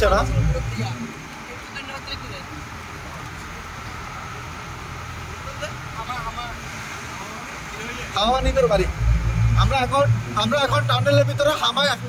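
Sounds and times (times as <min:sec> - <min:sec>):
car driving in tunnel drone: 0:00.0 - 0:12.0.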